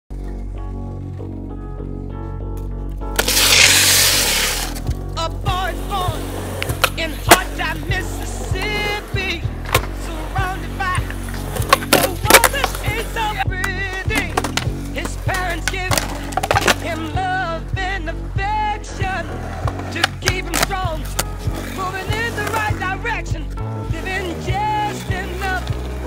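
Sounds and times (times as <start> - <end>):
skateboard wheels rolling on concrete: 0.1 - 26.0
music with steady beat: 0.7 - 26.0
skateboard clacking: 3.2 - 4.9, 6.4 - 17.3, 19.4 - 23.0.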